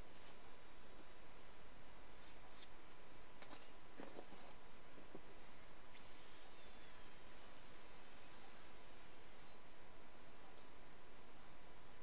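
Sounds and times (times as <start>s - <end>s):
steady hiss: 5.4s - 10.2s
faint falling whistle: 6.0s - 7.3s.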